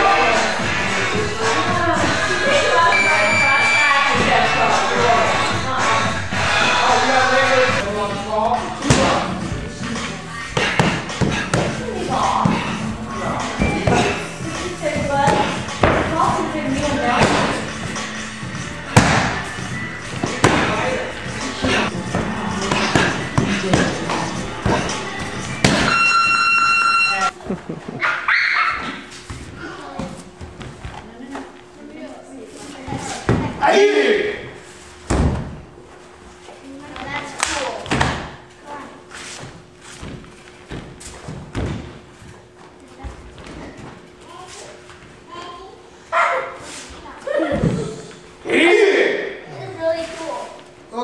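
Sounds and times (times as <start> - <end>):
steady high tone: 0.8 - 7.8, 25.7 - 27.4.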